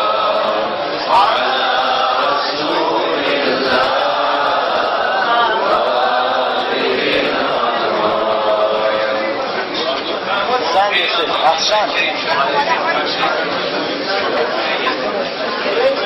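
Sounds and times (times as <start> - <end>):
overlapping voices: 0.0 - 14.9.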